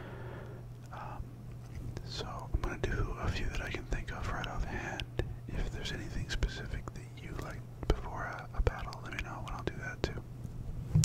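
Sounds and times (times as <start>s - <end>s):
steady low hum: 0.0s - 11.0s
man whispering: 0.9s - 1.3s, 2.0s - 10.2s.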